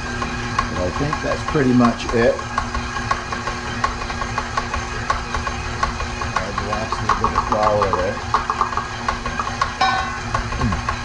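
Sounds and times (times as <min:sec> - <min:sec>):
stand mixer motor hum: 0:00.0 - 0:11.0
dough hook knocking: 0:00.6 - 0:11.0.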